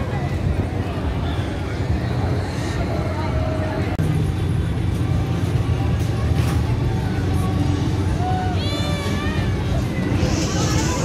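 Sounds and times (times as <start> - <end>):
fairground ride machinery drone: 0.0 - 11.0.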